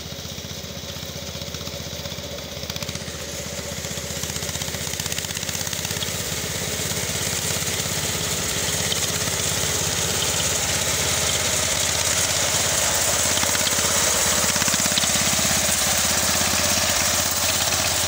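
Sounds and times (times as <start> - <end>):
harvester engine running: 0.0 - 18.0.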